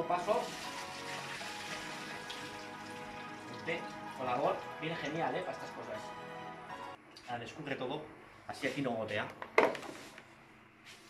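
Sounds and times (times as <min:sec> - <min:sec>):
tap water running into strainer: 0:00.2 - 0:04.0.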